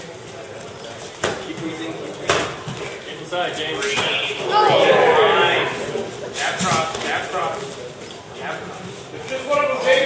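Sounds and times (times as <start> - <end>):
coaches and spectators shouting: 4.2 - 6.1.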